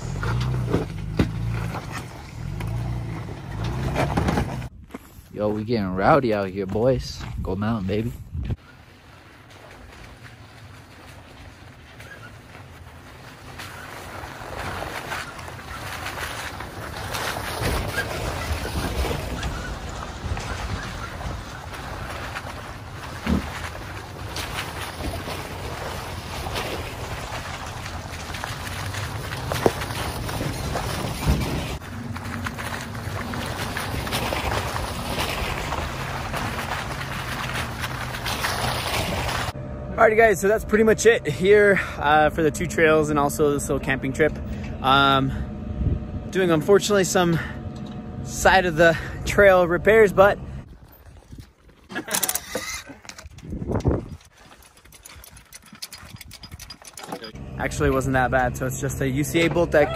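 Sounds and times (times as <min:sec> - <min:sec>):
off-road trucks crawling on trail: 0:00.0 - 0:59.9.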